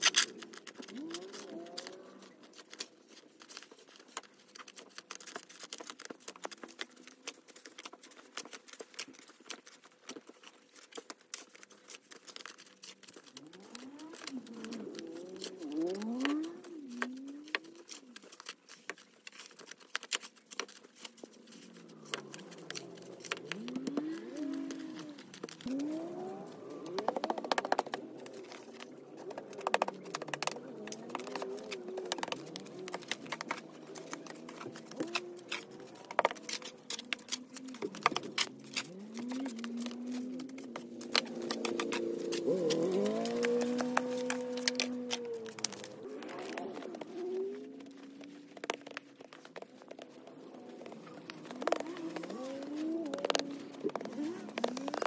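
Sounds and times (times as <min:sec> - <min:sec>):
snow shovel scraping pavement: 0:30.0 - 0:47.8.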